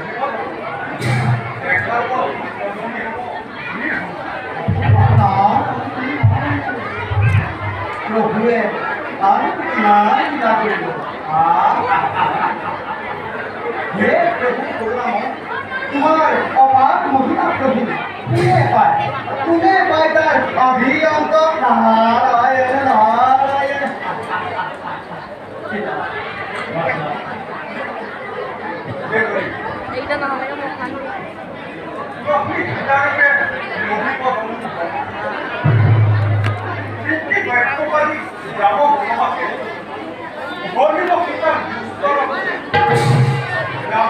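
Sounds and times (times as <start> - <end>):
background chatter: 0.0 - 44.0
people talking: 0.0 - 44.0
stage actors speaking: 0.0 - 44.0.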